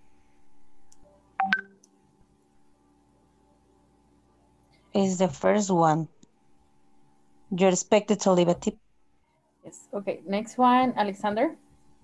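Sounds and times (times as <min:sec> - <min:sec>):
faint steady hum: 0:00.0 - 0:12.0
double electronic beep: 0:01.4 - 0:01.7.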